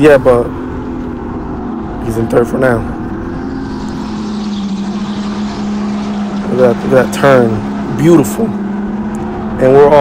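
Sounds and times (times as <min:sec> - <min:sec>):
wind and track noise: 0:00.0 - 0:10.0
go-kart motor running: 0:00.3 - 0:10.0.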